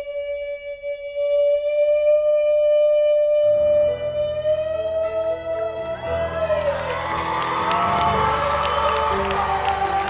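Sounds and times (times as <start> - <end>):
piano chords: 5.1 - 10.0.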